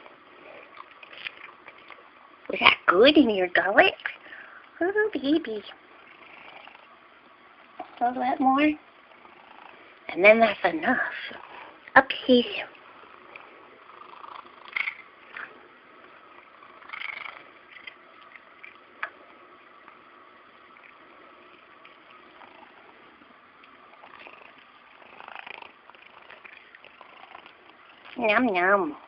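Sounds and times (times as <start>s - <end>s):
cat chewing: 0.6s - 2.0s, 24.0s - 28.2s.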